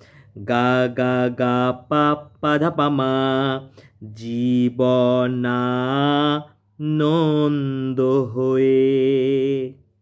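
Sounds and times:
man singing long held notes: 0:00.0 - 0:09.8.

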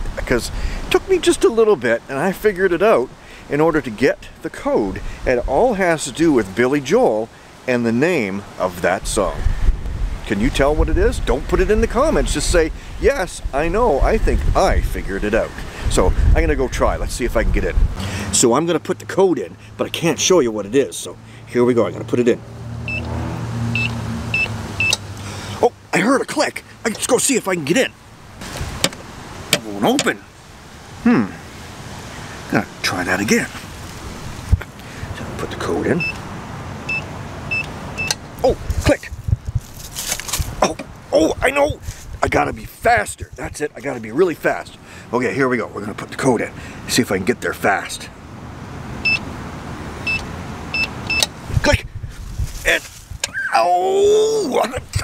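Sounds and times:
keypad lock beeps: 0:22.9 - 0:23.1, 0:50.8 - 0:51.3
electronic keypad beeps: 0:23.8 - 0:25.0, 0:36.0 - 0:36.2, 0:36.9 - 0:38.2, 0:49.0 - 0:49.2, 0:50.1 - 0:51.3.

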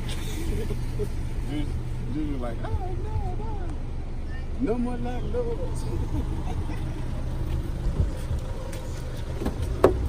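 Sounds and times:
low rumble of vehicles: 0:00.0 - 0:10.0.

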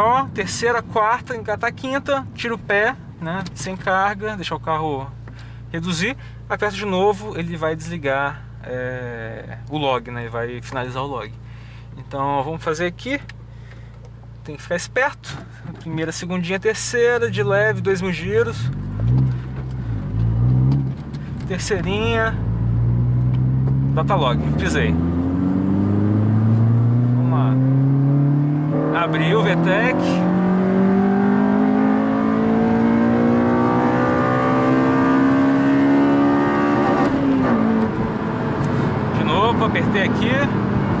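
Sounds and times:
car engine from inside cabin: 0:15.3 - 0:41.0.

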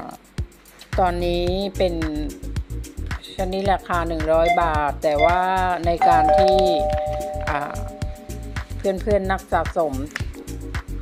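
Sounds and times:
two-note ding-dong chime: 0:04.4 - 0:08.5.

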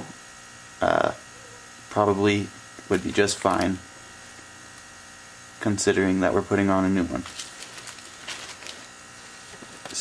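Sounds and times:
rag and plastic bag rustling: 0:02.8 - 0:04.4, 0:07.2 - 0:10.0.

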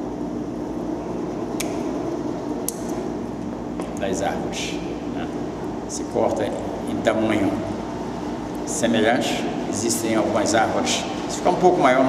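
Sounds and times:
air conditioner hum: 0:00.0 - 0:12.0.

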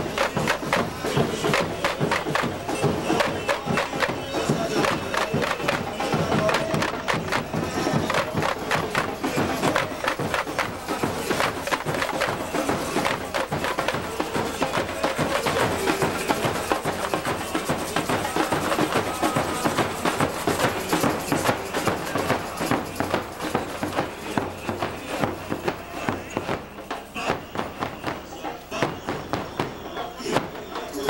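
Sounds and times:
drums playing fast samba rhythm: 0:00.0 - 0:31.0.

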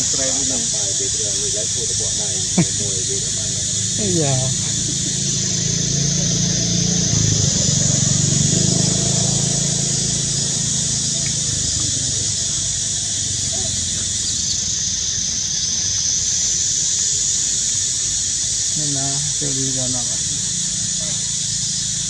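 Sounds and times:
faint voices: 0:00.0 - 0:17.6
high insect drone: 0:00.0 - 0:22.0
low rumble of vehicle engines: 0:00.0 - 0:22.0.

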